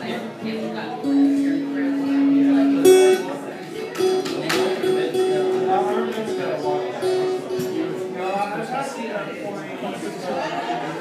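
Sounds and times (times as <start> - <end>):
guitar notes plucked: 0.0 - 8.8
people talking in background: 0.0 - 11.0.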